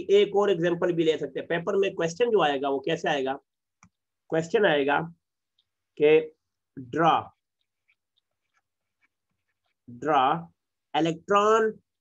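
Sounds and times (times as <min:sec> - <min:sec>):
man speaking: 0:00.0 - 0:03.6, 0:04.2 - 0:05.2, 0:05.9 - 0:07.5, 0:09.8 - 0:12.0.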